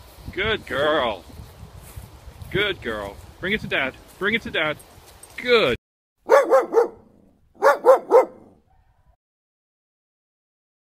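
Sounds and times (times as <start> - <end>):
young dog barking: 6.2 - 9.0.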